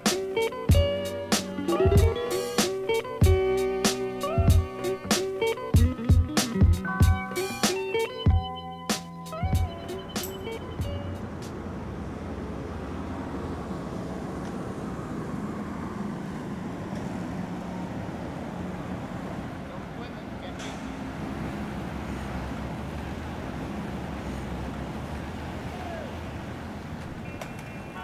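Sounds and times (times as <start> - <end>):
guitar notes ringing: 0.0 - 11.5
road traffic: 0.0 - 28.0.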